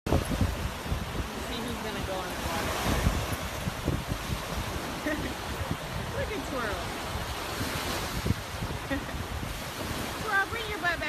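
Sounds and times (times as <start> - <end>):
wind buffeting microphone: 0.0 - 11.0
surf washing onto beach: 0.1 - 11.0.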